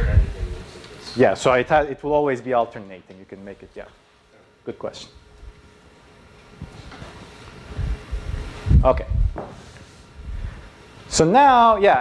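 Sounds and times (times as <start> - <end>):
faint room hum: 0.0 - 12.0
footsteps on floor: 9.3 - 10.0.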